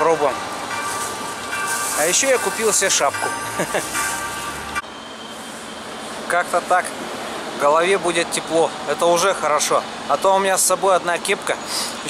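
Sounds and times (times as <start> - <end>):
street traffic hiss: 0.0 - 12.0.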